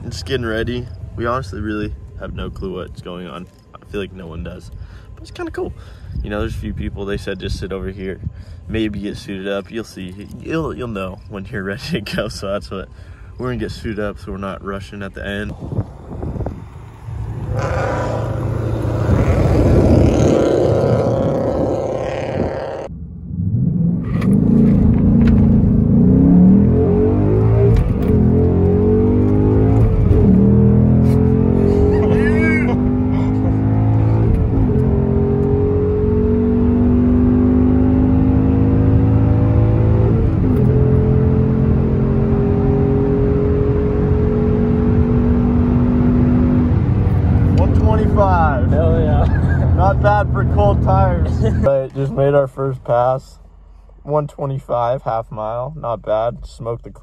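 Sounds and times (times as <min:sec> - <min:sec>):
car engine at full throttle: 0:15.5 - 0:53.1
car driving past outside: 0:16.1 - 0:22.4.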